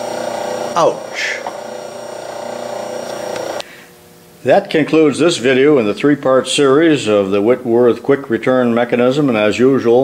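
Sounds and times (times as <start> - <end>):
machine motor hum and whine: 0.0 - 10.0.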